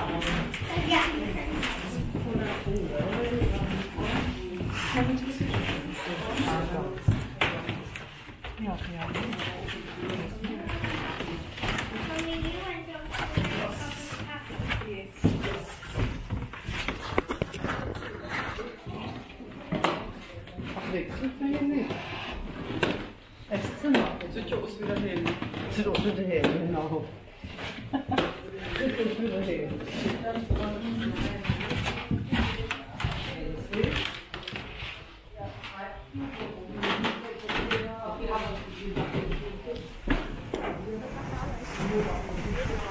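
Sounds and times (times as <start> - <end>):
people talking indistinctly: 0.0 - 42.9.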